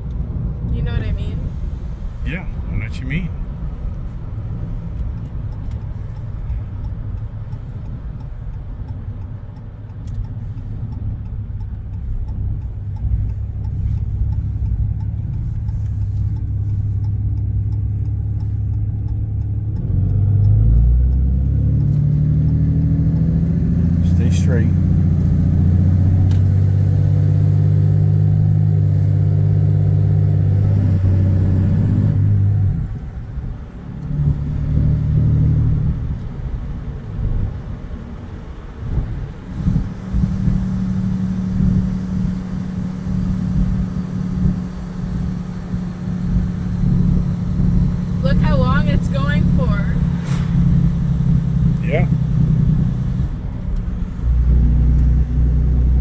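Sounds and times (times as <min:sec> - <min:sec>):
diesel truck engine droning: 0:00.0 - 0:56.0.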